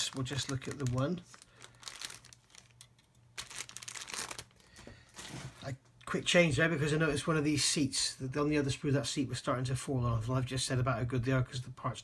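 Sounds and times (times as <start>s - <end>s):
plastic bag crinkling: 0.0s - 5.7s.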